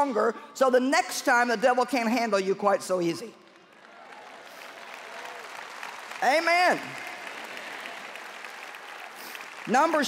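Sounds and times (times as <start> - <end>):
audience applauding: 3.6 - 10.0.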